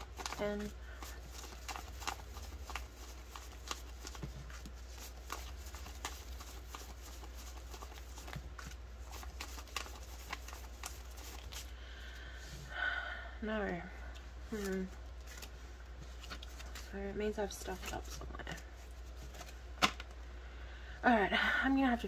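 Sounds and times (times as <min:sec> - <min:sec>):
banknotes flicking and rustling: 0:00.0 - 0:11.8, 0:14.5 - 0:20.1.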